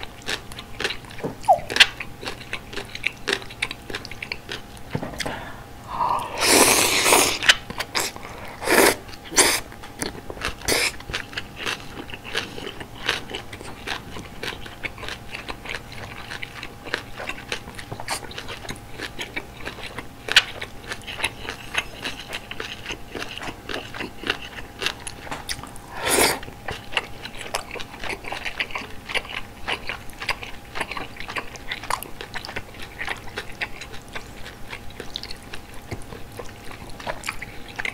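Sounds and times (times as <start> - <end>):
wet chewing with crunches: 0.0 - 37.9.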